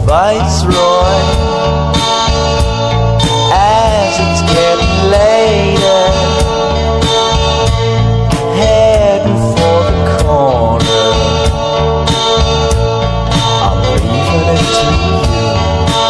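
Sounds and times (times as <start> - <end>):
indie rock song: 0.0 - 16.0.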